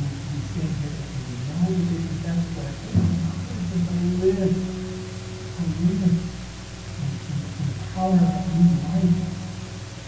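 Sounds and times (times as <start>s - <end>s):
man speaking low: 0.0s - 9.8s
steady low hum: 0.0s - 10.0s.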